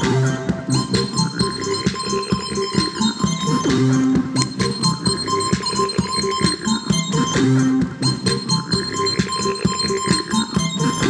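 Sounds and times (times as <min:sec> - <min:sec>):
steady high tone: 0:00.0 - 0:11.0
synthesizer blips and clicks: 0:00.0 - 0:11.0.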